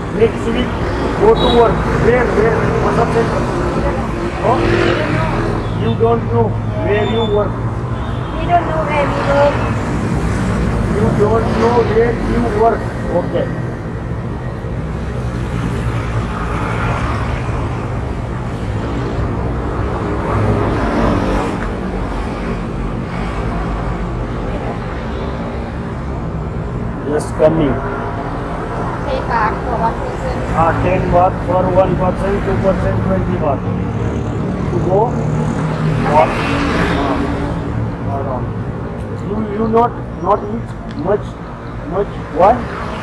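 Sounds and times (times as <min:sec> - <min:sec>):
roadside traffic noise: 0:00.0 - 0:43.0
vehicle passing: 0:00.0 - 0:43.0.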